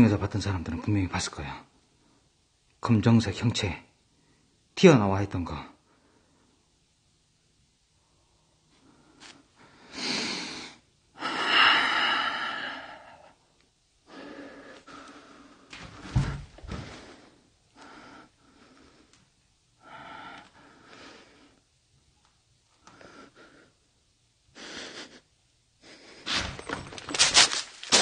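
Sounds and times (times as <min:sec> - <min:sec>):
person breathing heavily: 0:08.0 - 0:13.4, 0:14.0 - 0:21.6, 0:22.8 - 0:23.9, 0:24.5 - 0:26.8.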